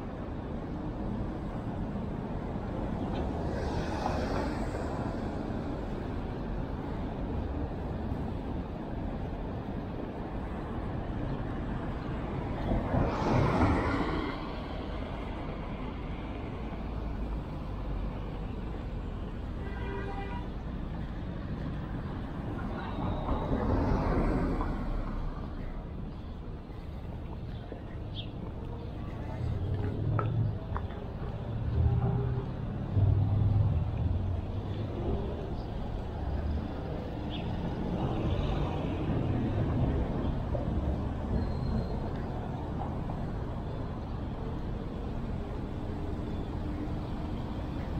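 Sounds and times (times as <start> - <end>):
cars driving past: 2.5 - 7.8, 11.6 - 19.4, 20.9 - 47.9.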